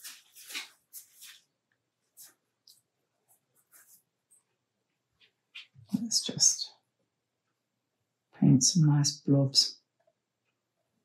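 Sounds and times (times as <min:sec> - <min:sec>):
paintbrush strokes on paper: 0:00.0 - 0:04.6.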